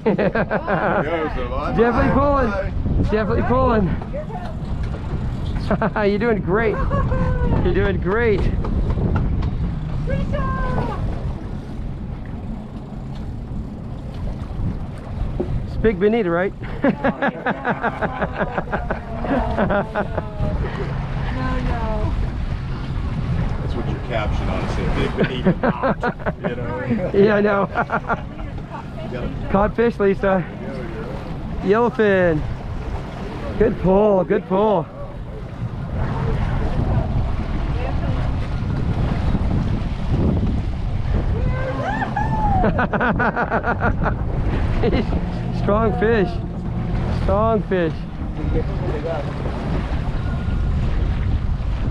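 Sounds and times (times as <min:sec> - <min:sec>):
boat engine low rumble: 0:00.0 - 0:51.9
sea: 0:00.0 - 0:51.9
wind buffeting microphone: 0:00.0 - 0:51.9.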